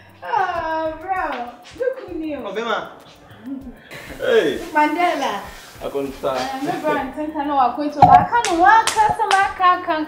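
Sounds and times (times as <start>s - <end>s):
woman talking: 0.2s - 2.4s, 4.7s - 5.4s, 6.4s - 10.0s
sharp hand clap: 8.0s - 9.6s.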